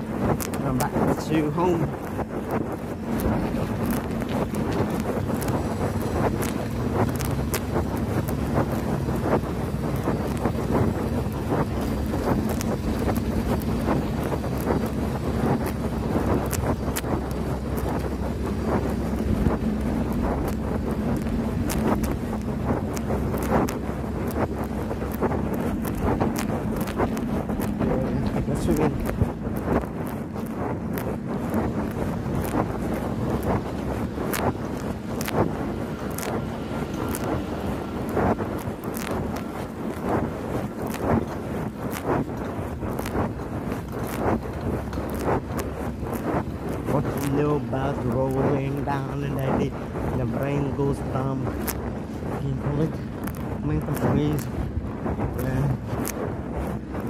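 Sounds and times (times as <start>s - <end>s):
tyres rumbling on pavement: 0.0s - 57.0s
wind buffeting microphone: 0.0s - 57.0s.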